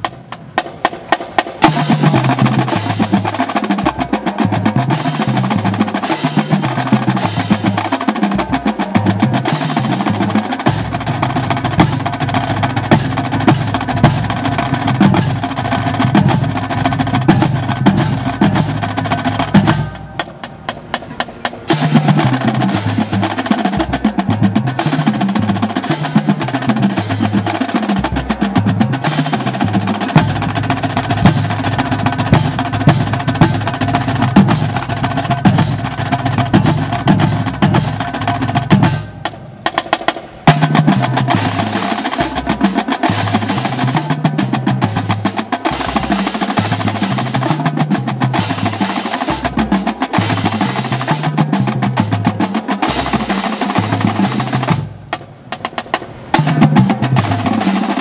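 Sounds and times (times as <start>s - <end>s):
marching bass drums: 0.0s - 58.0s
snare drums playing rolls: 0.0s - 58.0s.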